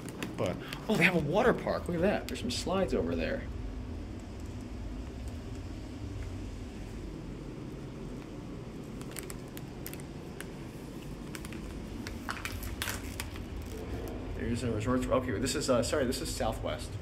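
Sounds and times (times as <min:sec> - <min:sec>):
low indoor rumble: 0:00.0 - 0:17.0.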